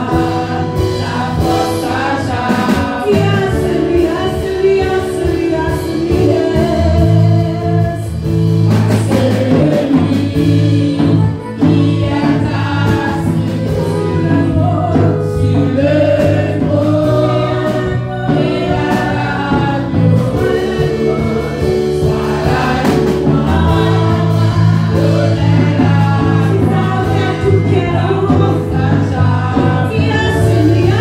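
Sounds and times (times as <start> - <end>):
backing singers: 0.0 - 31.0
drum kit: 0.0 - 31.0
woman singing into microphone: 0.0 - 31.0.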